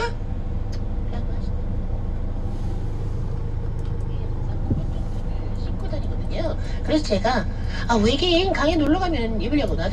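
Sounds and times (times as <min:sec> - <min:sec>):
faint car radio: 0:00.0 - 0:09.9
van engine idling: 0:00.0 - 0:09.9.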